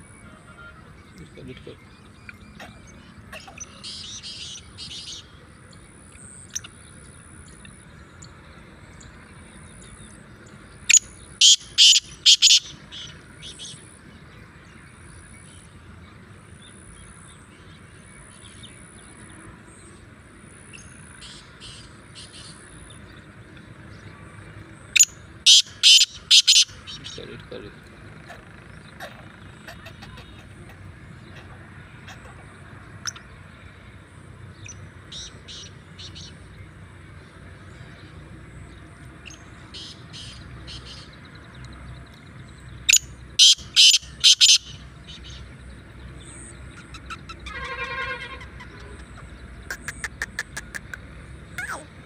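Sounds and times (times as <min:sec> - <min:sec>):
bird calling harshly: 0:10.9 - 0:13.6, 0:25.0 - 0:27.2, 0:28.2 - 0:32.4, 0:42.9 - 0:45.4, 0:46.8 - 0:52.0.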